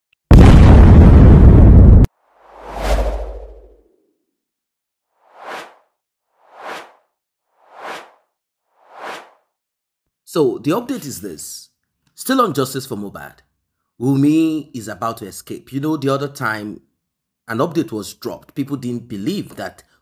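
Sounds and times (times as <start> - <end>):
low boom: 0.3 - 3.8
whoosh: 2.2 - 3.9, 5.2 - 9.5
short whooshes: 2.4 - 3.9, 5.2 - 9.5.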